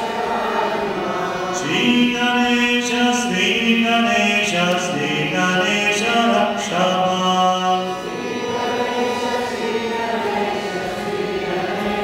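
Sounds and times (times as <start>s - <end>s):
group chanting a mantra: 0.0s - 12.0s.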